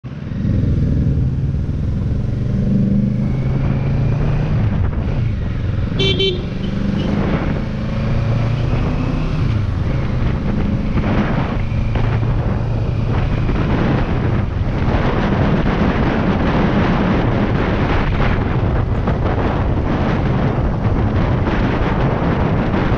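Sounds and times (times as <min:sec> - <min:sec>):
wind rushing over microphone: 0:00.0 - 0:22.9
motorcycle engine revving through gears: 0:00.1 - 0:22.9
horn tooting: 0:05.9 - 0:07.2.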